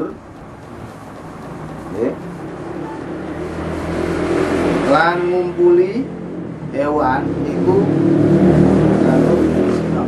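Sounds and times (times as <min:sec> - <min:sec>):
vehicle engine passing by: 0:00.0 - 0:10.0.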